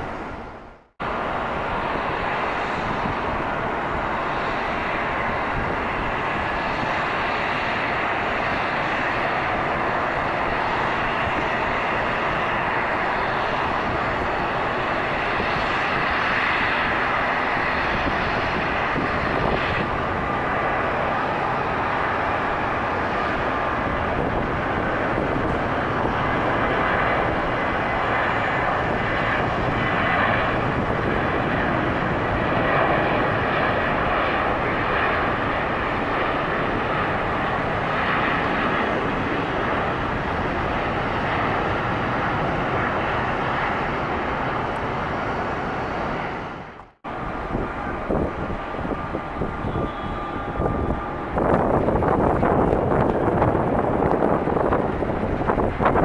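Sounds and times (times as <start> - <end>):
jet engines roaring at takeoff: 0.0 - 56.0.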